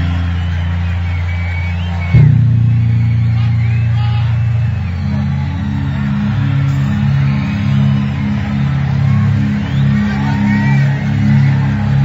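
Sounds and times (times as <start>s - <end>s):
crowd cheering: 0.0s - 12.0s
deep sustained bass line: 0.0s - 12.0s.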